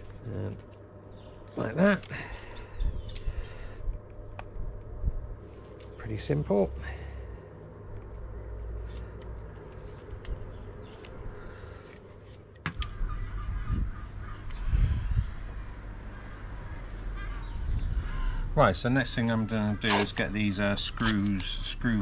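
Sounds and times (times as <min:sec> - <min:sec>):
low steady rumble: 0:00.0 - 0:21.0.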